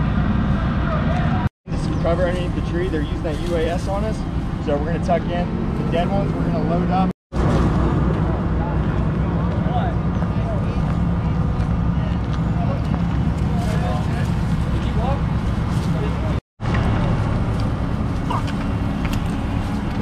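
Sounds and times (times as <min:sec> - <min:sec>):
diesel engine idling: 0:00.0 - 0:20.0.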